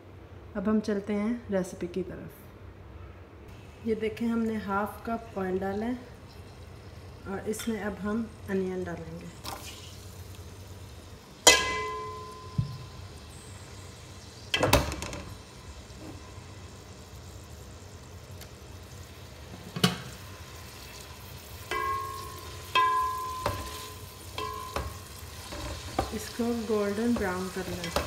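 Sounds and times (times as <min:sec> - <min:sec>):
onions sizzling in oil: 0:03.5 - 0:28.0
kitchenware knocking and clinking: 0:21.7 - 0:26.2.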